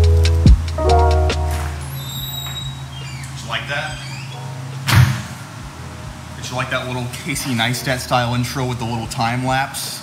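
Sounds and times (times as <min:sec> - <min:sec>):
door thudding shut: 0:04.9 - 0:05.4.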